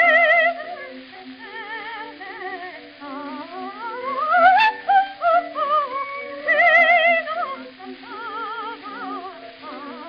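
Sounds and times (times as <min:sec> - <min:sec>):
musical accompaniment: 0:00.0 - 0:10.0
soprano singing: 0:00.0 - 0:10.0.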